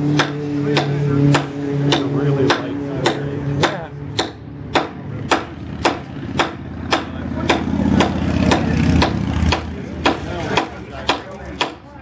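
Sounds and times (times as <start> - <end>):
low engine drone: 0.0 - 10.0.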